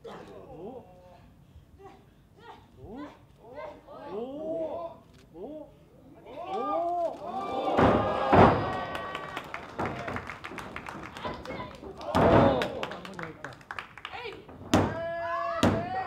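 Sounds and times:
wrestlers shouting: 6.3 - 10.3, 11.0 - 13.1
audience clapping: 8.6 - 14.5.

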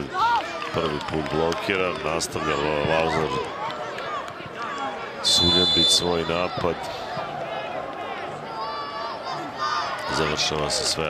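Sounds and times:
high voices shouting: 2.2 - 10.5.

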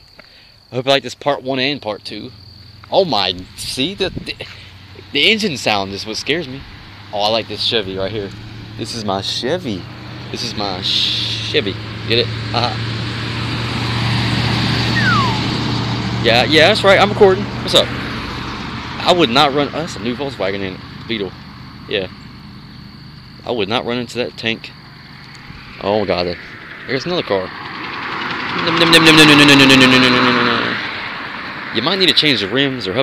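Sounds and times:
pickup truck engine and tyres: 0.0 - 33.0
car passing by: 6.5 - 16.2, 25.1 - 32.6.

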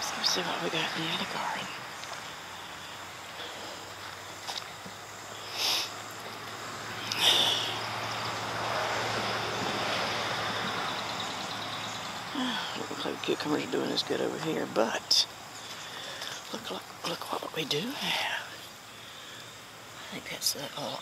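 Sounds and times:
passing vehicle: 0.0 - 14.7.

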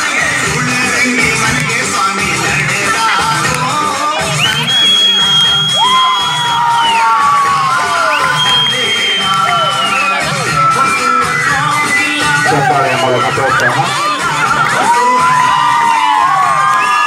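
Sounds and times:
dance music over loudspeakers: 0.0 - 17.0
children cheering and shouting: 5.5 - 17.0.

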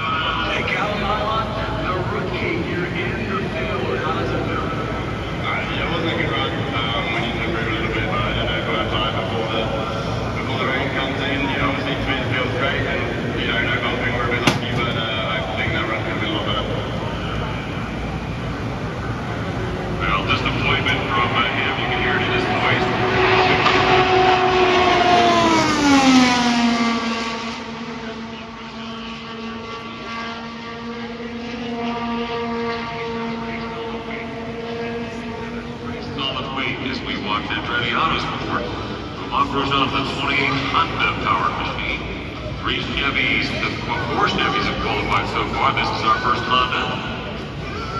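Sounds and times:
race car engine passing: 0.0 - 47.9.

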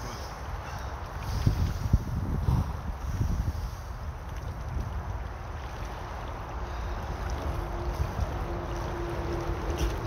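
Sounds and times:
shallow river water rushing: 0.0 - 10.0
wind buffeting microphone: 0.0 - 10.0.

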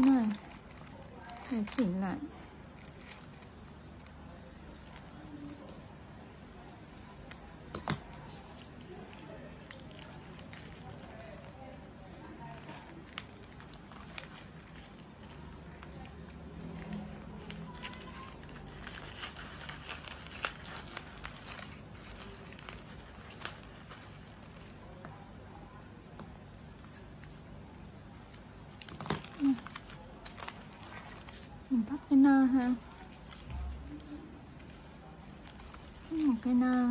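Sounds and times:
paper wrapping crinkling: 0.0 - 5.8, 8.2 - 27.4, 28.2 - 36.9.

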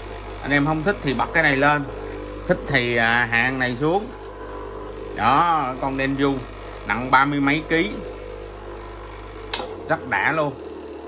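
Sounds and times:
bench grinder motor hum: 0.0 - 11.0
sharp click: 9.5 - 9.8.

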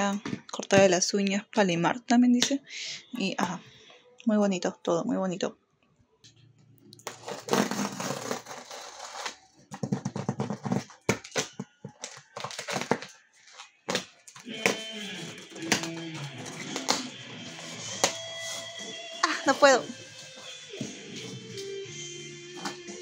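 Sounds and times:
packing tape ripping off box: 7.0 - 9.4, 10.4 - 13.1, 13.9 - 19.0
hands scraping and tapping cardboard: 9.7 - 13.1
music: 14.3 - 23.0.

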